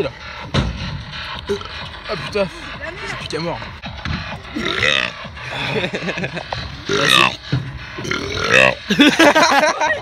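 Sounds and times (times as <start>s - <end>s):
young man burping loudly: 4.5s - 5.1s, 8.0s - 8.8s.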